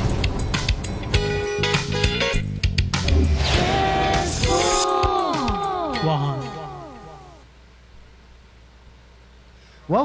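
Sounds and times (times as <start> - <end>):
low steady hum: 0.1 - 10.0
man speaking: 5.9 - 7.4.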